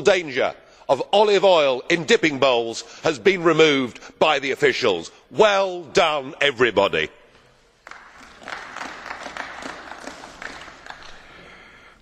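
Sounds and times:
crowd applauding: 7.8s - 11.8s.

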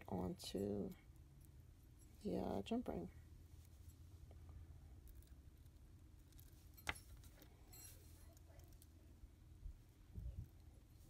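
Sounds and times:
low room hum: 0.0s - 11.0s
faint metallic clinks: 6.5s - 8.9s.

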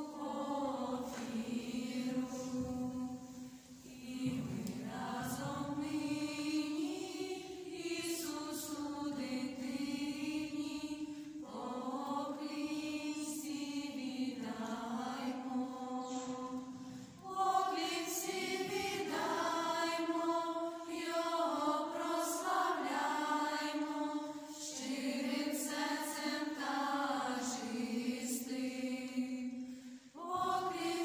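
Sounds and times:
girls singing unaccompanied: 0.0s - 31.0s.

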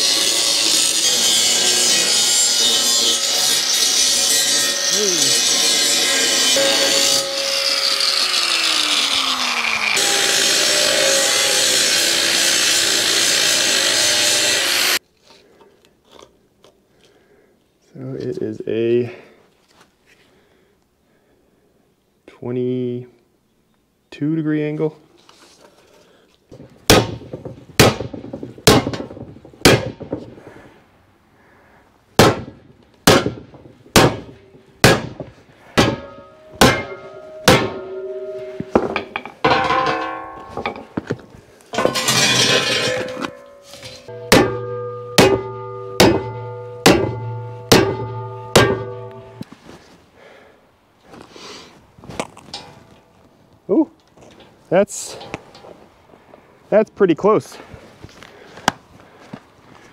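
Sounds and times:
steel plate ringing: 0.0s - 8.2s, 33.1s - 41.0s, 41.7s - 49.4s
hammer striking steel plate: 26.9s - 30.2s, 32.2s - 41.1s, 41.8s - 49.4s.

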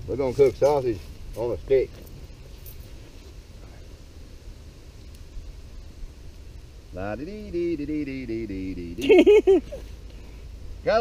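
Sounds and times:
low outdoor background rumble: 0.0s - 11.0s.

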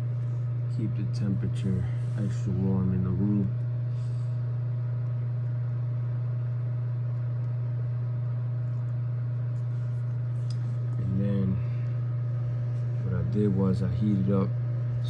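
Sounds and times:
space heater humming: 0.0s - 15.0s.

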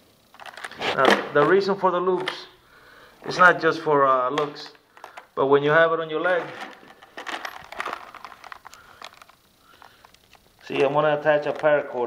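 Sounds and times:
leather sheath clicks and rustles: 6.7s - 9.4s.

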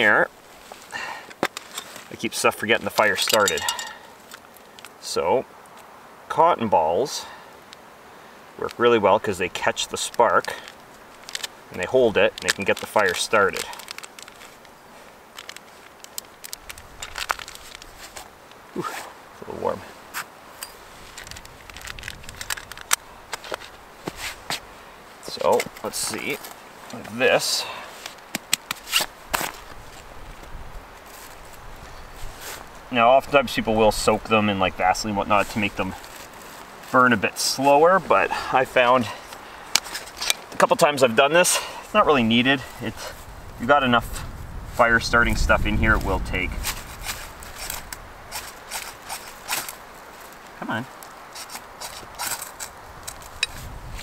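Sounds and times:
fire striker scraping: 2.9s - 4.4s, 39.7s - 40.7s, 46.5s - 49.8s, 51.3s - 53.7s
rustling of cotton balls: 8.6s - 54.0s.

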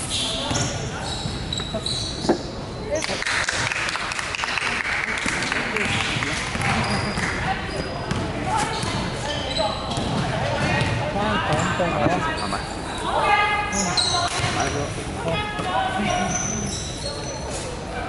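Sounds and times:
shoe squeaks on court: 0.0s - 2.5s, 6.6s - 10.2s, 11.5s - 13.1s, 13.7s - 14.9s, 16.0s - 17.7s
basketball bouncing: 5.8s - 7.2s, 8.1s - 9.0s.

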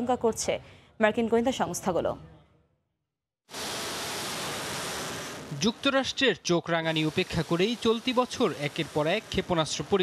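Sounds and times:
rocket motor rushing: 3.5s - 10.0s.

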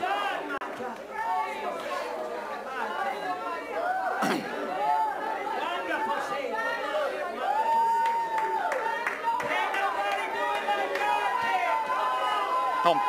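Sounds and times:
crowd voices calling out: 0.0s - 13.0s.

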